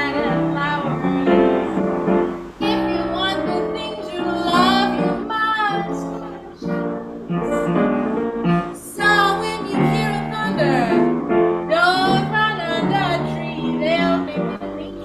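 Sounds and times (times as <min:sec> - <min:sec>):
piano accompaniment: 0:00.0 - 0:15.0
woman singing jazz: 0:00.0 - 0:15.0.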